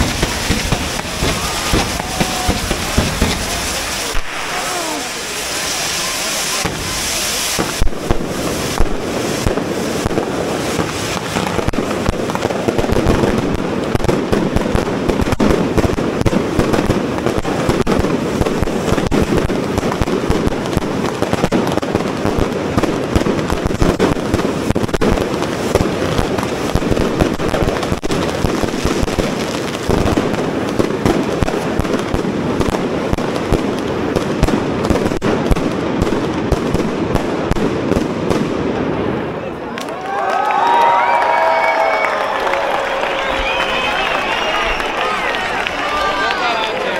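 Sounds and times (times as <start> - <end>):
firework fountains crackling: 0.0 - 46.9.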